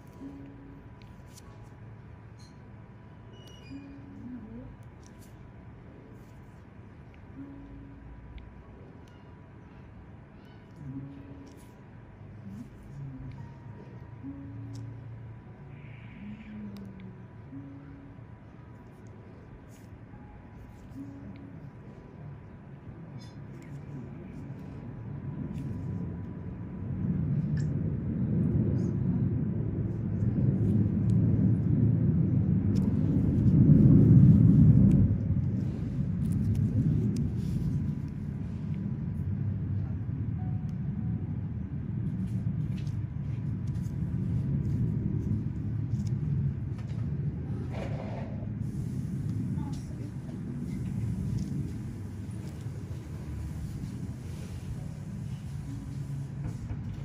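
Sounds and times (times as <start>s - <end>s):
low muffled rumble: 0.0s - 57.0s.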